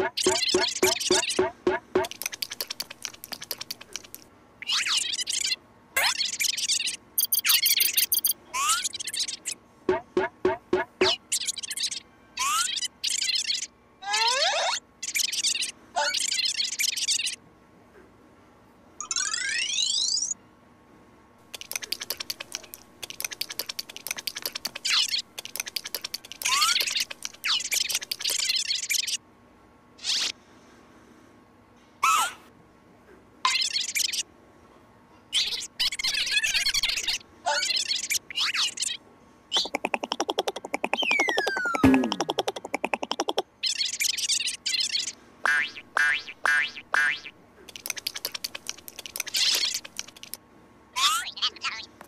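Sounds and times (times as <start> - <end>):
cartoon boing: 0.0 - 2.1, 9.9 - 11.2, 39.6 - 43.4, 45.5 - 47.3
rapid sharp clicks: 0.0 - 4.3, 21.5 - 28.4, 39.6 - 43.4, 47.7 - 50.4.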